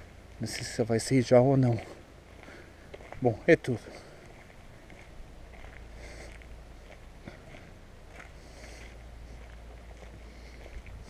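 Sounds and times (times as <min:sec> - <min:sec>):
low street rumble: 0:00.0 - 0:11.0
footsteps on cobblestones: 0:04.2 - 0:11.0.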